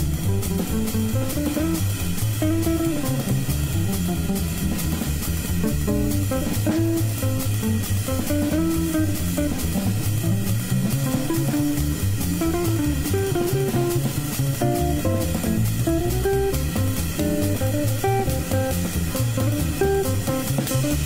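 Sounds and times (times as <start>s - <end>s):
drum kit cymbals: 0.0s - 21.0s
guitar melody: 0.0s - 21.0s
plucked double bass: 0.0s - 21.0s.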